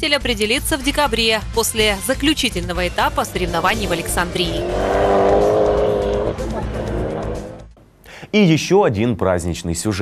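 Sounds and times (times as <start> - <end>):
car engine at high revs: 2.8 - 7.7.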